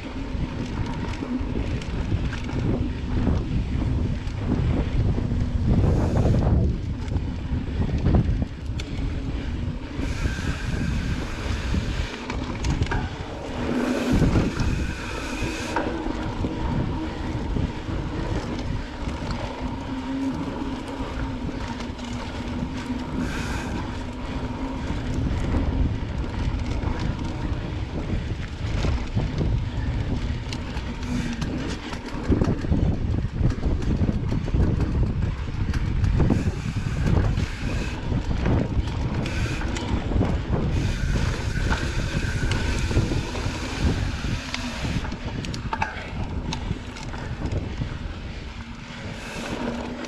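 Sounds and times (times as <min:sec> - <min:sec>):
bike frame and drivetrain rattle: 0:00.0 - 0:50.0
bike tyre rumble on dirt: 0:00.0 - 0:50.0
steady hum: 0:00.0 - 0:50.0.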